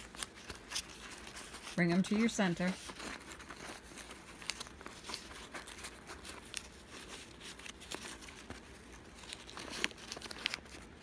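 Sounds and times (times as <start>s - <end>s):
newspaper crinkling: 0.0s - 11.0s.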